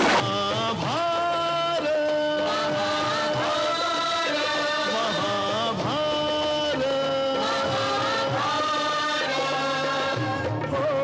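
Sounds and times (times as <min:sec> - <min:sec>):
instrumental accompaniment: 0:00.0 - 0:11.0
choir chanting held notes: 0:01.8 - 0:10.8.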